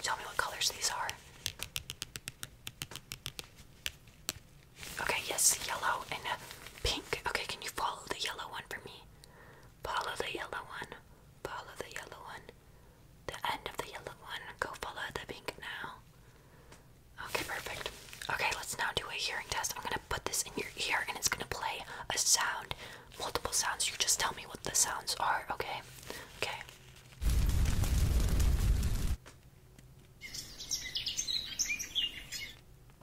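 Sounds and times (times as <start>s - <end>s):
woman whispering: 0.0s - 1.2s, 5.0s - 9.1s, 9.8s - 12.6s, 13.3s - 16.0s, 17.2s - 26.8s.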